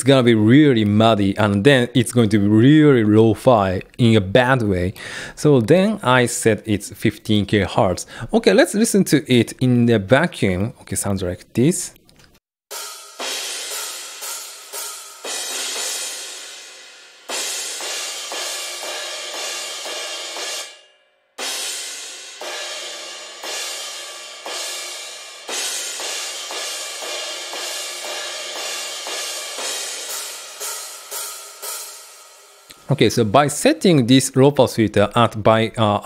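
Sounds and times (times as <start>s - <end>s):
cymbal crashes: 12.7s - 32.8s
hi-hats: 21.5s - 33.0s.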